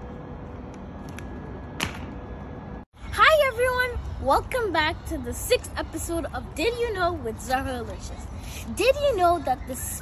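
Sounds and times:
faint steady hum: 0.0 - 10.0
outdoor background noise: 0.0 - 10.0.

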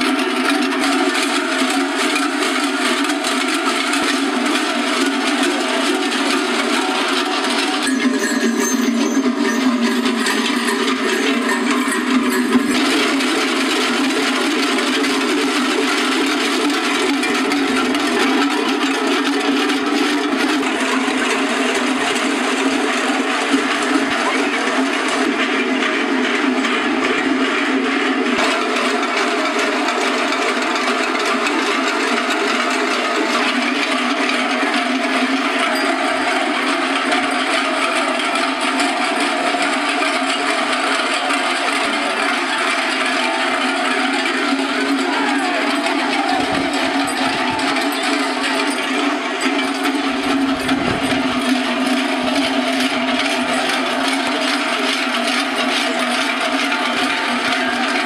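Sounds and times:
large cowbells clanging: 0.0 - 58.0.

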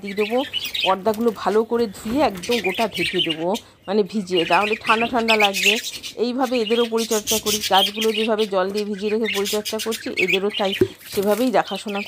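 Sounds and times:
budgerigars chirping and squawking: 0.0 - 12.0
woman talking: 0.0 - 12.0.

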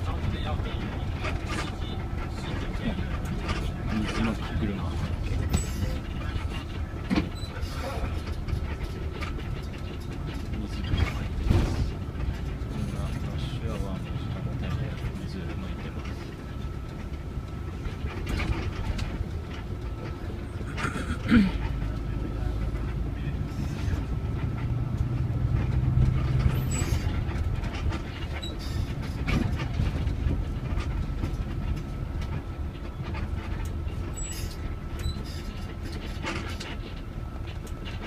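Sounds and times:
rattles and knocks in cabin: 0.0 - 23.3, 23.9 - 38.0
bus engine rumbling: 0.0 - 38.0.

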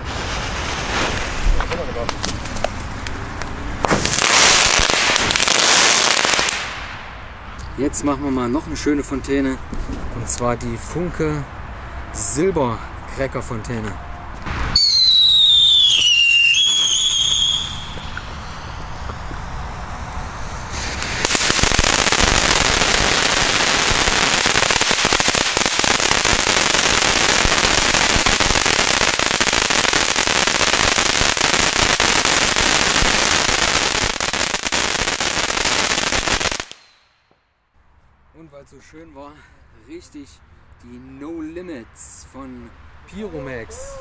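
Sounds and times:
crackling firework fountain: 0.0 - 7.2, 14.4 - 37.2
falling whistling tone: 14.7 - 18.8.

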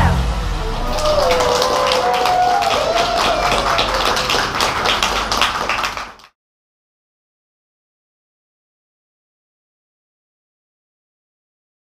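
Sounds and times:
people clapping: 0.8 - 6.4.

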